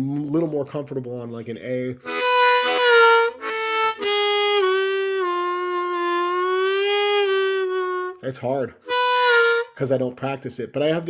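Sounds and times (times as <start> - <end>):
harmonica with bending notes: 2.0 - 9.9.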